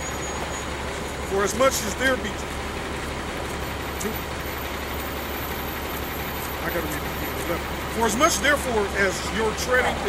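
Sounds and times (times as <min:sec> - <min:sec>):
heavy vehicle running nearby: 0:00.0 - 0:10.0
street traffic rumble: 0:00.0 - 0:10.0.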